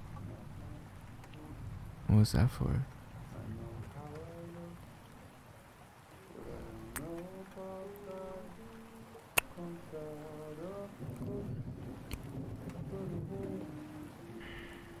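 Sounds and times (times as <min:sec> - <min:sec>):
rain pattering: 0:00.0 - 0:15.0.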